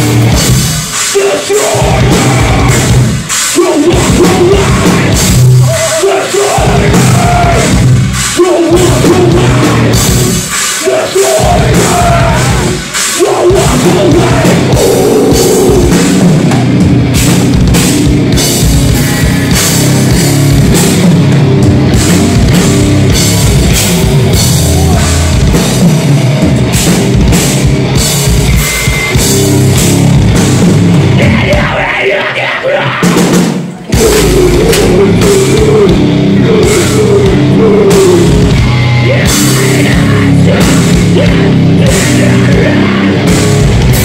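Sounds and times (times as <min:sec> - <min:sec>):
vocals: 0:00.0 - 0:16.7, 0:24.6 - 0:25.5, 0:31.0 - 0:44.0
heavy rock guitars: 0:00.0 - 0:44.0
pounding drum kit: 0:00.0 - 0:44.0.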